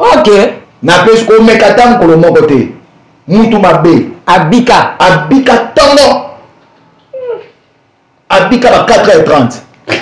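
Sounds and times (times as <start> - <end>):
man speaking: 0.0 - 6.4, 8.3 - 9.7.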